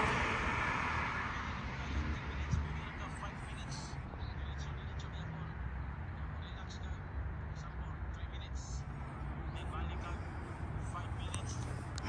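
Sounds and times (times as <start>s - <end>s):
car passing: 0.0s - 12.0s.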